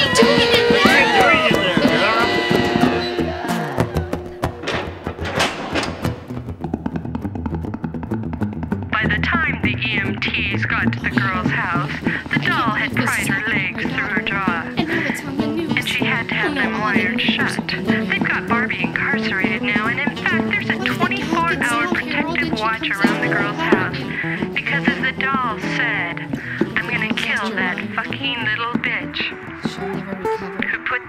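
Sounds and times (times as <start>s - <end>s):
voices: 0.0s - 6.0s, 8.9s - 31.0s
music: 0.0s - 31.0s.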